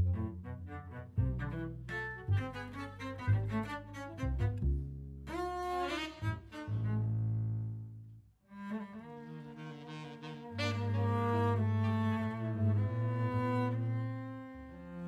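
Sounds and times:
bowed cello and double bass: 0.0s - 15.0s.

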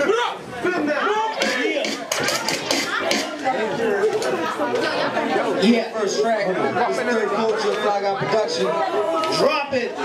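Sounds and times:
overlapping chatter: 0.0s - 10.0s.

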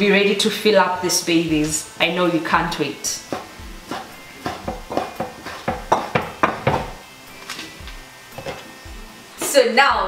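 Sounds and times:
knife chopping on wooden board: 3.3s - 7.0s.

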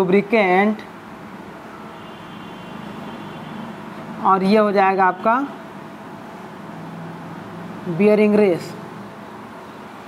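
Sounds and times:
room background noise: 0.0s - 10.0s.

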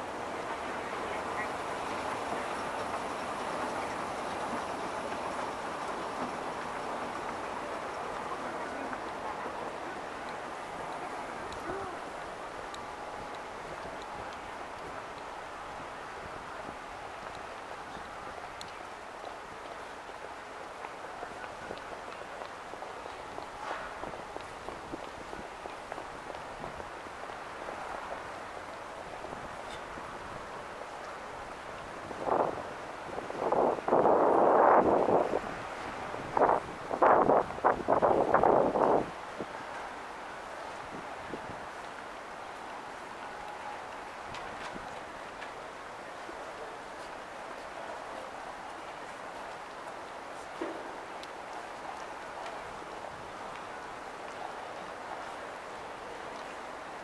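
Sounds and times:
wind buffeting microphone: 0.0s - 39.9s
city murmur: 0.0s - 57.0s
faint indistinct voices: 0.1s - 6.4s, 7.1s - 14.6s.

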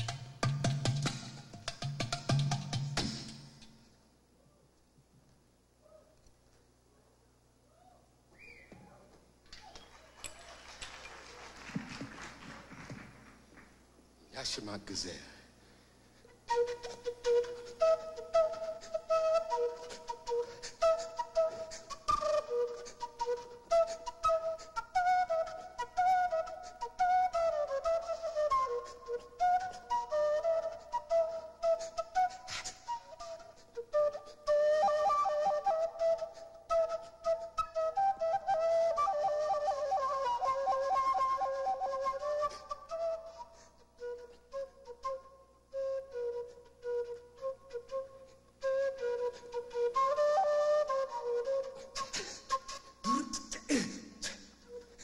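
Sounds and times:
wooden flute solo: 7.8s - 9.0s, 16.4s - 55.0s.

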